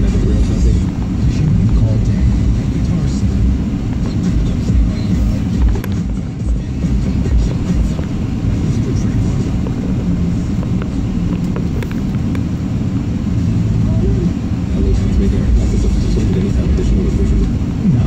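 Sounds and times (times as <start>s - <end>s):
car engine and tyre rumble: 0.0s - 18.0s
car radio playing: 0.0s - 18.0s.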